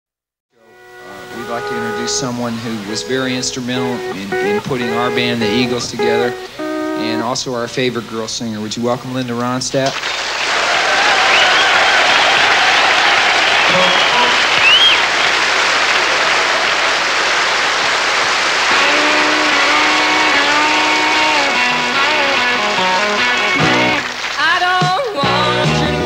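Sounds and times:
band playing sustained notes: 0:00.5 - 0:08.6, 0:13.4 - 0:24.3
audience applauding and cheering: 0:09.9 - 0:25.4
whistles from audience: 0:11.0 - 0:17.0.

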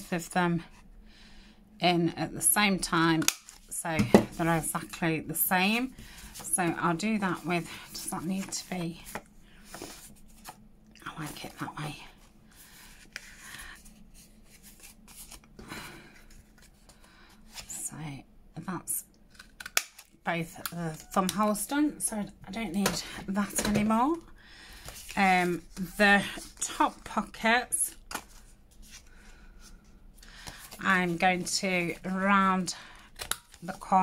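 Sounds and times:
card paper rustling: 0:05.7 - 0:10.6, 0:12.6 - 0:17.7
paper rustling and sliding: 0:07.4 - 0:10.6.

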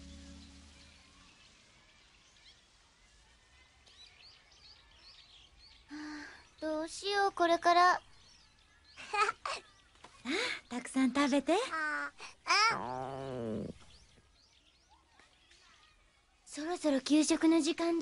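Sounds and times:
background music: 0:00.0 - 0:03.9
faint bird chirps: 0:00.0 - 0:17.3.

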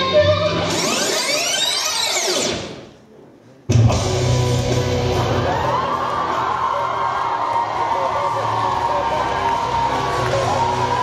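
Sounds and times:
music soundtrack: 0:03.7 - 0:11.0.

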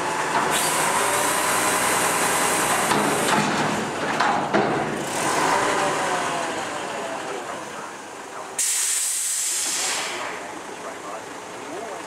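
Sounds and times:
garbage truck engine and hydraulics: 0:00.0 - 0:11.8
compressed air hiss: 0:08.6 - 0:10.3.

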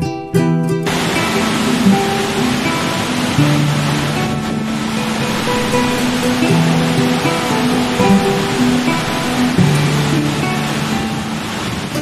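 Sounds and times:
soft music with held notes: 0:00.0 - 0:12.0
water rushing: 0:00.8 - 0:12.0.

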